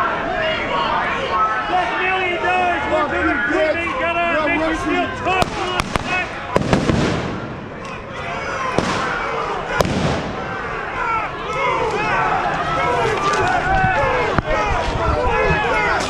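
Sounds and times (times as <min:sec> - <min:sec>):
crowd shouting: 0:00.0 - 0:16.0
sharp explosive bangs: 0:05.4 - 0:07.8, 0:08.7 - 0:10.7.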